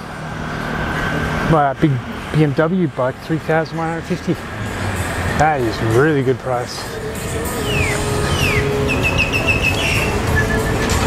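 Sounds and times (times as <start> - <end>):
low rumble of traffic: 0.0 - 11.0
high whistled notes: 6.9 - 11.0.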